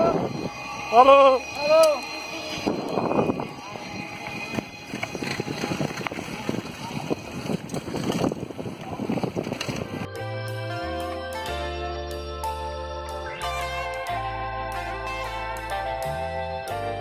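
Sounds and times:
faint voices: 0.0 - 10.0
wind buffeting microphone: 0.0 - 10.1
bicycle rattling on dirt road: 0.8 - 10.1.

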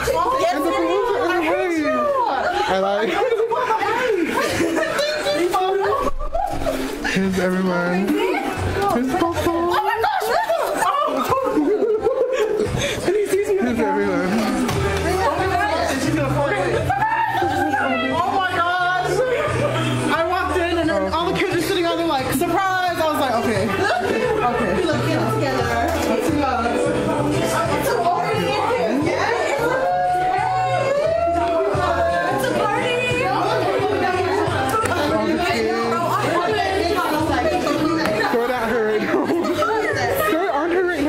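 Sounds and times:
many voices chattering: 0.0 - 41.0
music playing: 0.0 - 41.0
people laughing: 0.0 - 41.0
people talking over one another: 0.0 - 41.0.

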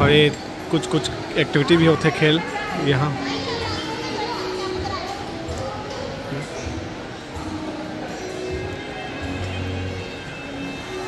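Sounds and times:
background music: 0.0 - 11.0
chatter of people and children: 0.0 - 11.0.

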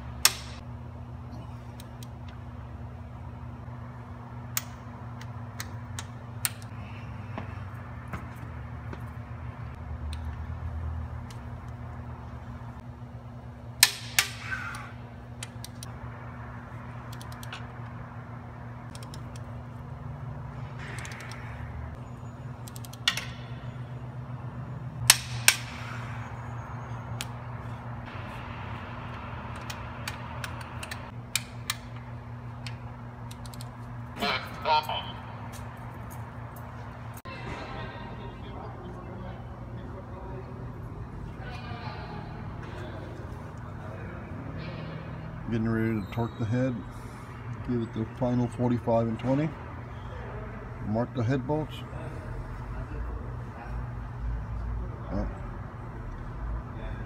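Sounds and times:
steady low hum: 0.0 - 57.0
torque wrench clicking: 22.6 - 23.4, 32.6 - 33.8.

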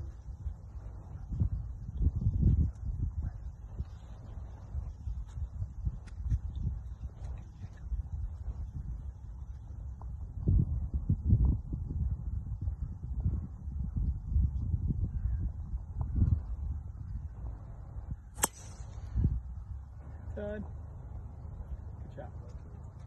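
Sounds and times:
wind buffeting microphone: 0.0 - 23.0
golf driver striking ball: 18.4 - 19.0.

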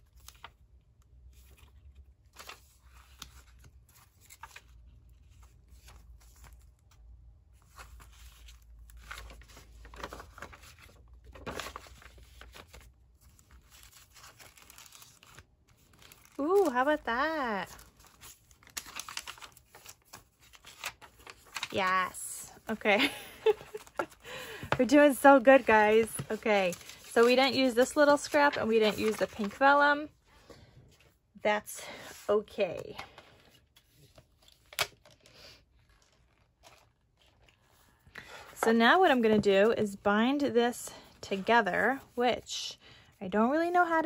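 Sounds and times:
paper pages rustling: 1.3 - 30.1, 32.4 - 39.8.

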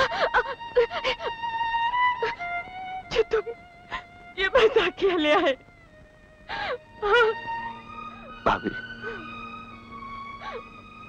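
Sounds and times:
background film music: 0.0 - 11.0.

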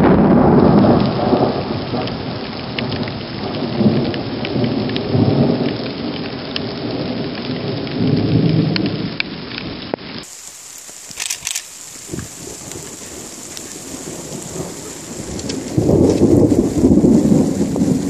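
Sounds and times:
thunder rumbling: 0.0 - 9.3, 10.2 - 18.0
rain hissing: 0.0 - 18.0
raindrops ticking: 0.3 - 18.0.

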